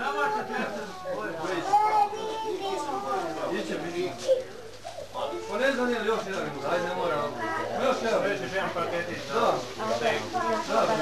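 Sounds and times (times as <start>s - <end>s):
indistinct talking: 0.0s - 11.0s.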